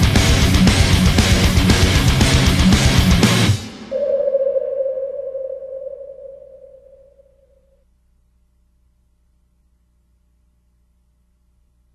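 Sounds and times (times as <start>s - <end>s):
held heavy metal note ringing: 3.8s - 7.3s.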